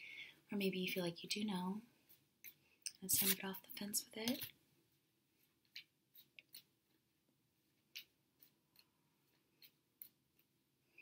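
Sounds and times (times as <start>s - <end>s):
cards being shuffled: 3.1s - 3.5s.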